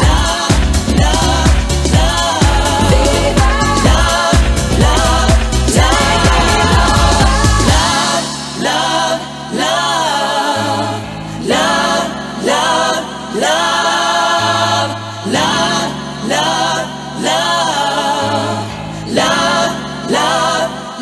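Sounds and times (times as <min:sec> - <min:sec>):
held bass notes: 0:00.0 - 0:08.2
sung vocal phrases: 0:00.0 - 0:21.0.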